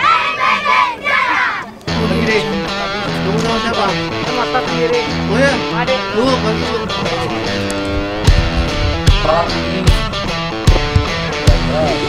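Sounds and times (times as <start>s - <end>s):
children shouting in unison: 0.0s - 1.8s.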